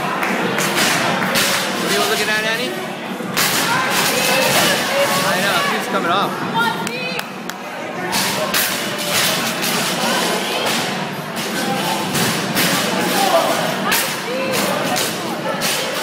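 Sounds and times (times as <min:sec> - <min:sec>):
people shouting: 0:12.8 - 0:16.0.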